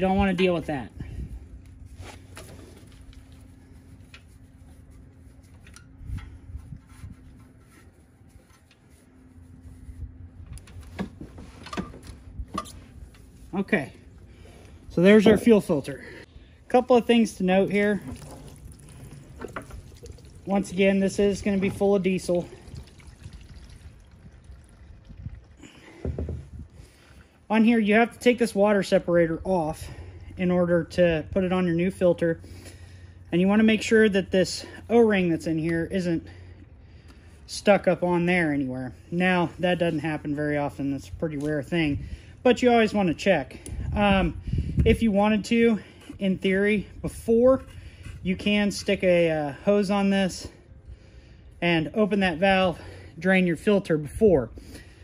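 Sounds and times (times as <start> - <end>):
fuel dripping into a drain pan: 17.6 - 26.2.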